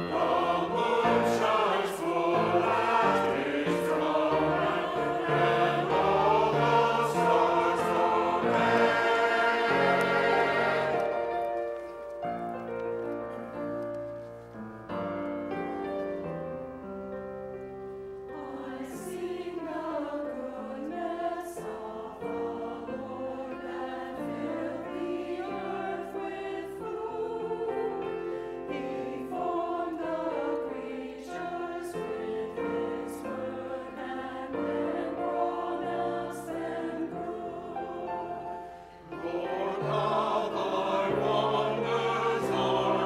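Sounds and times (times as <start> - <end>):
mixed choir singing in parts: 0.0 - 11.8, 18.3 - 43.0.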